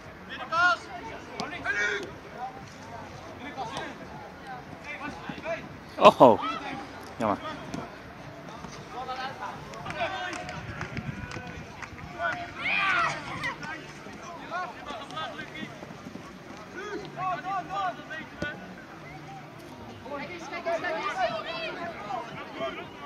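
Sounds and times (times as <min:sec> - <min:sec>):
football players shouting: 0:00.4 - 0:02.2, 0:09.0 - 0:15.8, 0:16.6 - 0:19.4, 0:20.1 - 0:23.0.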